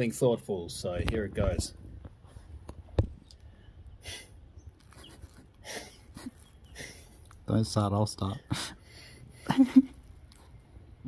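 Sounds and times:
man's breathy laughter: 4.0 - 7.2, 8.5 - 10.1.

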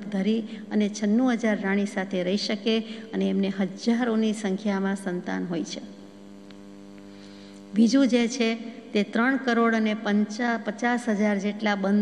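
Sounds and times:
woman speaking: 0.0 - 5.9, 7.7 - 12.0
electrical mains hum: 0.0 - 12.0.

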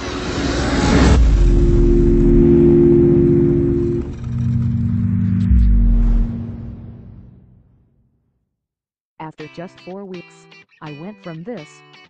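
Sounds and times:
low droning chord: 0.0 - 7.7
noisy whoosh: 0.0 - 7.9
deep bass boom: 0.6 - 7.8.

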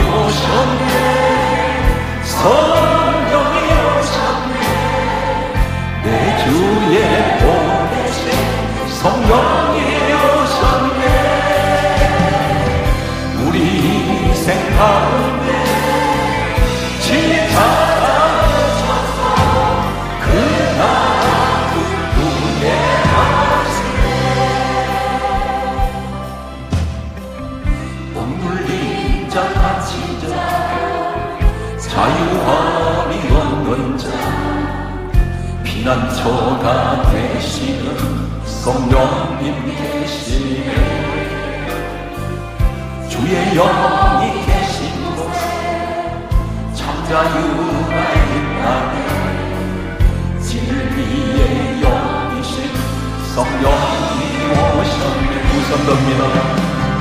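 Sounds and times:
bass and keyboard: 0.0 - 57.0
choir singing worship song: 0.0 - 57.0
drum beats: 5.6 - 27.9, 53.4 - 57.0.

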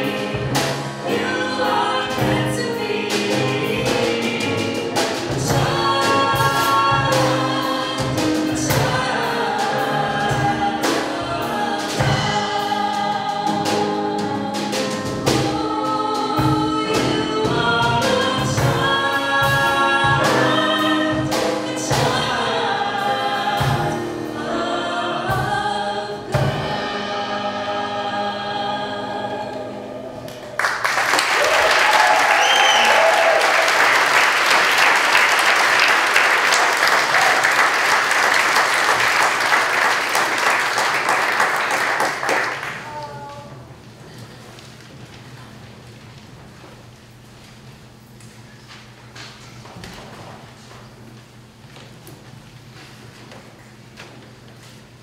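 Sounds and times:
steady drum beat: 0.0 - 27.8
vocal group singing a hymn: 0.0 - 30.8
audience applause: 30.3 - 43.2.

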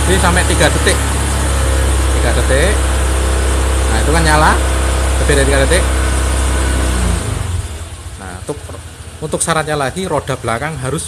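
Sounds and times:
scooter engine revving: 0.0 - 11.0.

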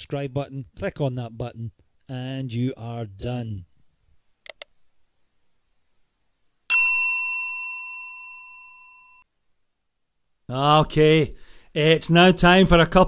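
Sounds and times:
quick clicks: 4.4 - 4.7
bright bell ding: 6.7 - 9.2.

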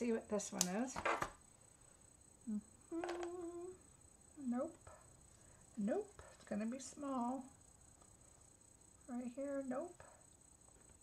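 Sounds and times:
woman humming: 2.4 - 5.0.

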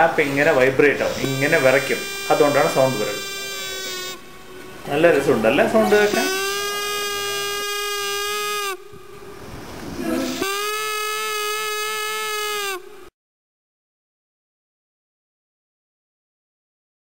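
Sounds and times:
paper flute reedy tones: 0.0 - 13.1.

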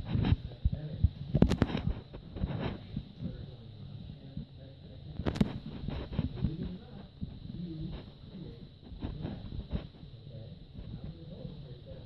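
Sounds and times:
muffled indistinct voices: 0.0 - 12.0.

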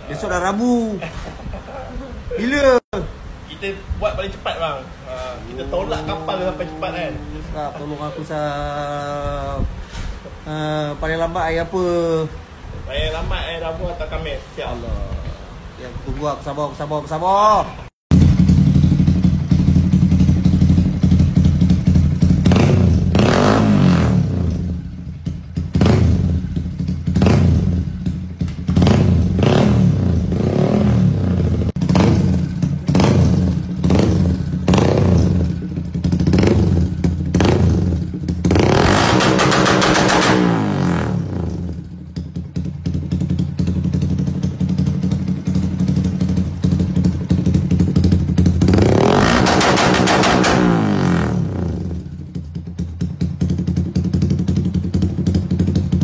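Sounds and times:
motorcycle engine revving: 18.1 - 56.0.

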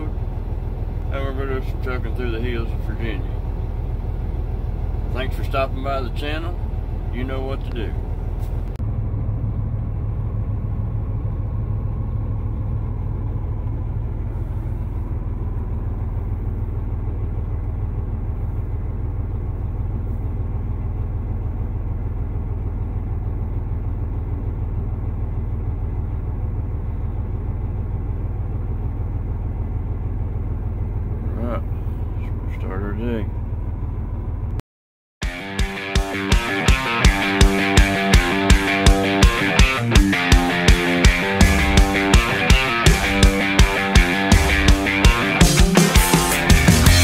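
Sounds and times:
diesel engine idling: 0.0 - 34.6, 35.2 - 47.0.

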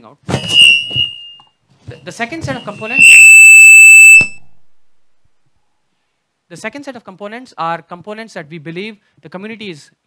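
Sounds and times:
high-pitched steady tone: 2.7 - 4.5.

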